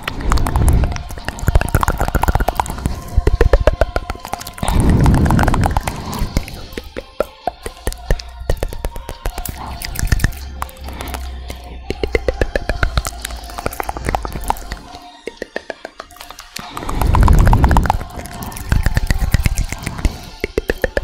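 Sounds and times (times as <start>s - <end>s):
wet mouth clicks and pops: 0.0s - 21.0s.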